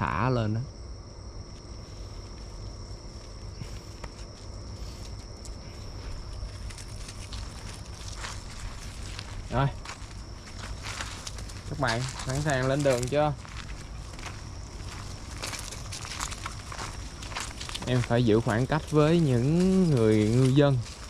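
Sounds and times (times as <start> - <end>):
night insects chirring: 0.0 - 21.0
footsteps on dry leaves: 1.7 - 21.0.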